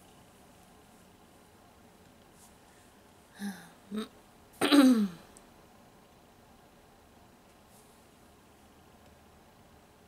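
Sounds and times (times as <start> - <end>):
woman sighing: 3.3 - 4.1.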